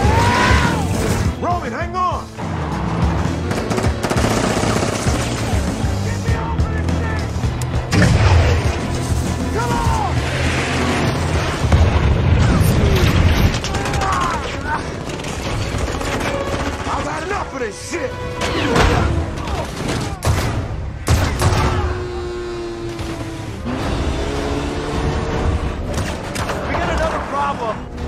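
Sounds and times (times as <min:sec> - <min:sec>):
driving action music score: 0:00.0 - 0:28.0
vehicle engine noise: 0:02.2 - 0:13.4, 0:21.4 - 0:28.0
gunfire bursts: 0:03.4 - 0:05.8.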